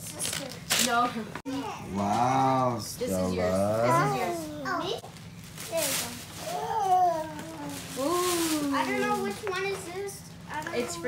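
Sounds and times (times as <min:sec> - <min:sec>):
tissue paper rustling: 0:05.4 - 0:09.5.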